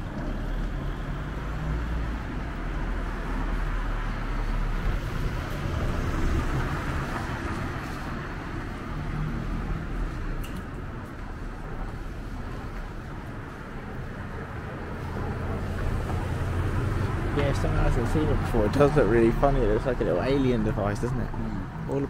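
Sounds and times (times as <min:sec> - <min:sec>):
car approaching: 0:00.0 - 0:22.0.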